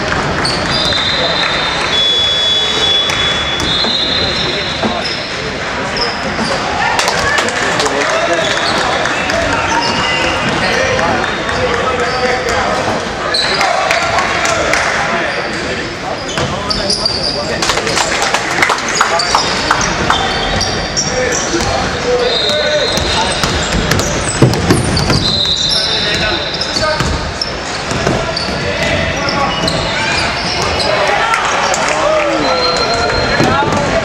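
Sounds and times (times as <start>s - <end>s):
shoe squeaks: 0.4s - 6.8s, 8.3s - 13.7s, 15.2s - 17.6s, 19.0s - 31.2s, 32.3s - 34.0s
basketball bouncing on wood floor: 23.0s - 25.4s, 27.0s - 27.3s.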